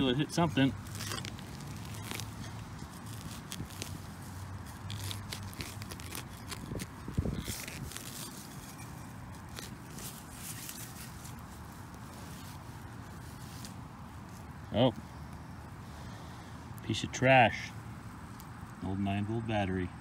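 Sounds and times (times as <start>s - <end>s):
knife cutting through turf: 0.0s - 15.4s.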